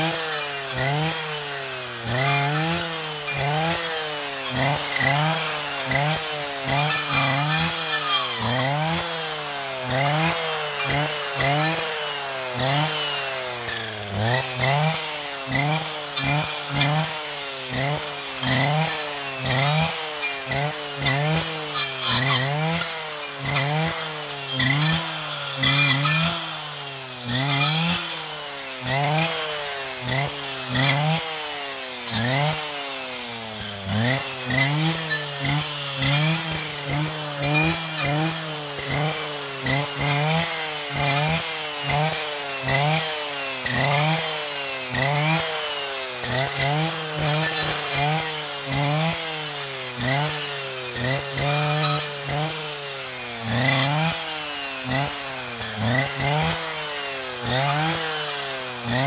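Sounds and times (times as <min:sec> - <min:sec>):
brushcutter engine revving: 0:00.0 - 0:59.0.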